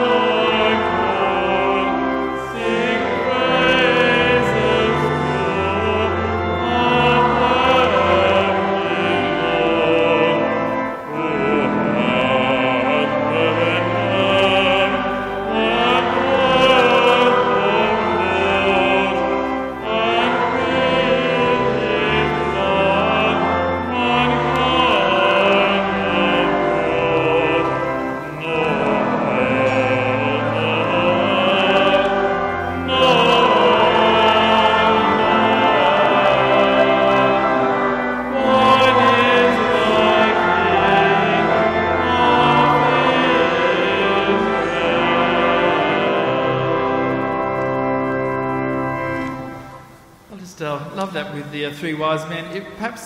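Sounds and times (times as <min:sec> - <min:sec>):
accompaniment holding steady notes: 0:00.0 - 0:53.0
congregation singing a carol: 0:00.0 - 0:53.0.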